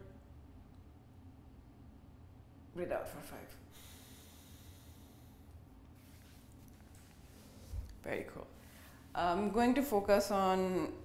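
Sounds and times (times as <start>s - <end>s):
exhale through nostril: 3.7s - 5.5s.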